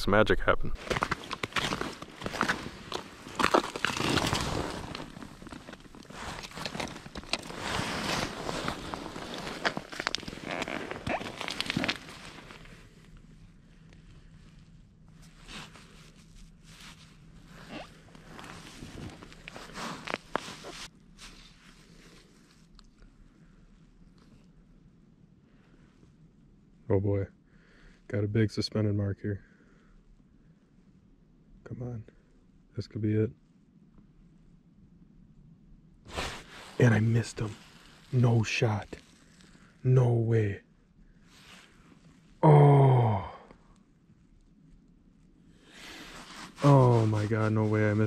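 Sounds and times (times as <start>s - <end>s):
rustling and crunching on ice: 0.8s - 13.4s, 14.0s - 22.9s, 36.1s - 39.8s, 45.7s - 48.0s.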